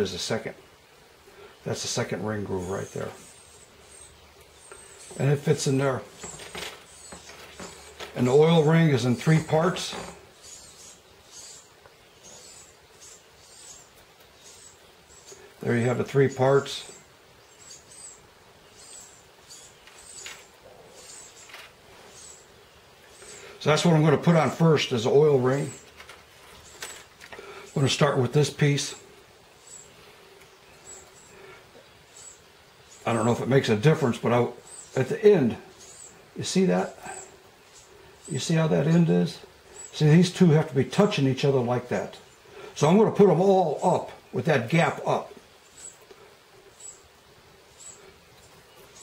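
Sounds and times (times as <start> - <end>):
faint handling sounds: 6.0 - 8.3, 21.4 - 22.2, 25.7 - 27.5.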